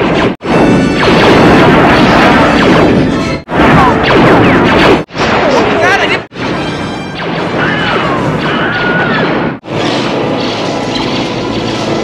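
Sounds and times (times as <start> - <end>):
explosions: 0.0 - 10.4
film score music: 0.0 - 12.0.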